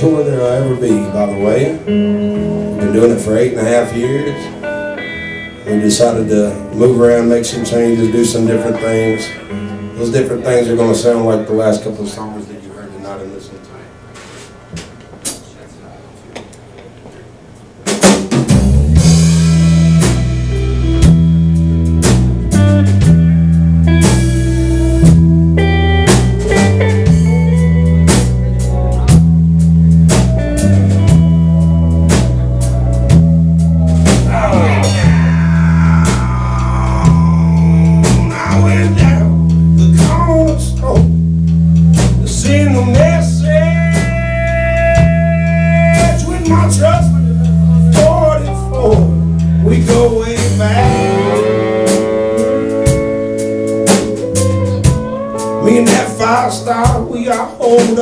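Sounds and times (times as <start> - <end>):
live rock band playing: 0.0 - 12.1, 17.6 - 58.0.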